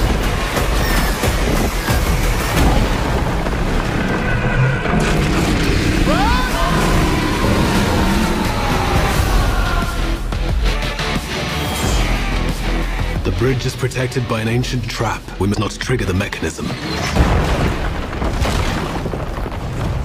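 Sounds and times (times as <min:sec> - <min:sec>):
loud dense trailer music: 0:00.0 - 0:18.1.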